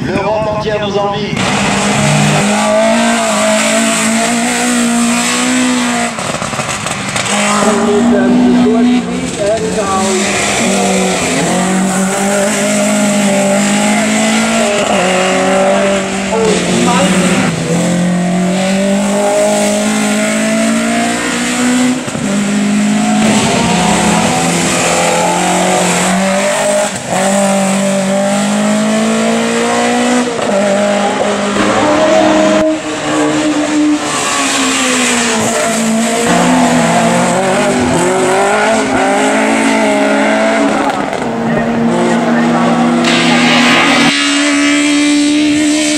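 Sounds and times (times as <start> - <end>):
race car engine revving hard: 1.3 - 45.9.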